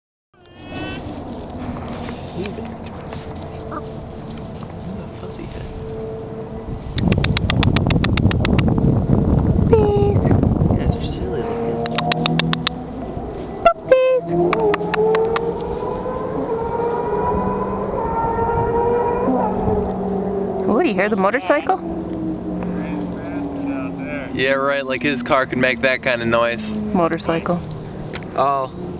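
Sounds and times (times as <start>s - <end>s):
distant motorcycle engine: 0.8s - 28.9s
puppy whining: 3.6s - 4.0s.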